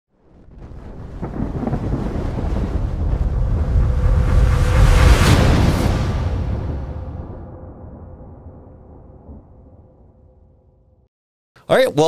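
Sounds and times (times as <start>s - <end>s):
deep thunder-like rumble: 0.2s - 11.0s.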